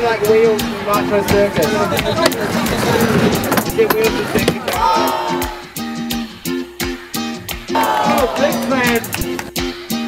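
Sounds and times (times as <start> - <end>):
skateboard clacks: 1.3 - 4.8, 8.0 - 9.7
skateboard rolling on wooden ramp: 1.3 - 4.9.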